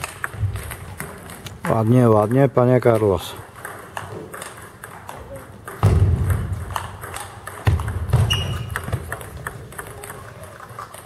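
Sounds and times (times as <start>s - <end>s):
table tennis balls ticking: 0.0s - 11.0s.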